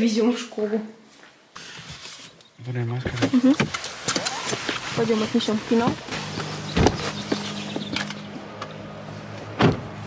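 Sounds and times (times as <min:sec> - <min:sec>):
low car hum: 0:03.3 - 0:10.0
car door thudding shut: 0:06.7 - 0:08.0, 0:09.6 - 0:09.9.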